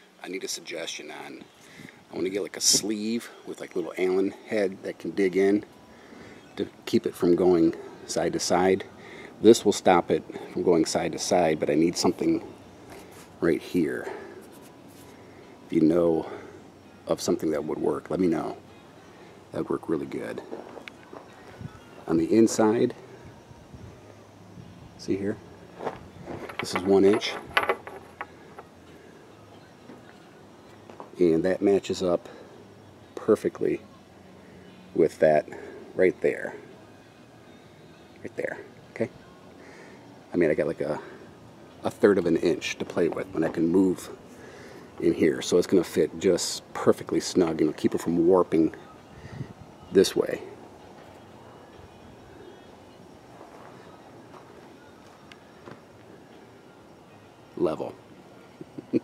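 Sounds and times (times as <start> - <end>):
faint background hiss: 0.0 - 59.0.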